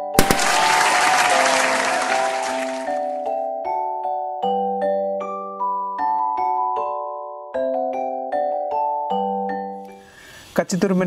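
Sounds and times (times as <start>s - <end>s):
sharp pops: 0.0s - 1.5s
applause: 0.1s - 3.2s.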